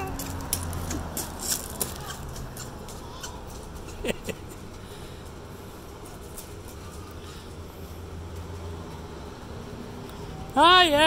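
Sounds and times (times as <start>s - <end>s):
shoes crunching on gravel: 0.0s - 2.8s
low outdoor hum: 0.0s - 11.0s.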